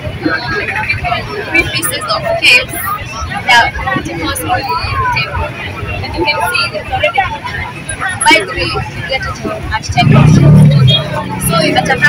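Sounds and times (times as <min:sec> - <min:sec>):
market bustle: 0:00.0 - 0:12.0
people talking: 0:00.0 - 0:12.0.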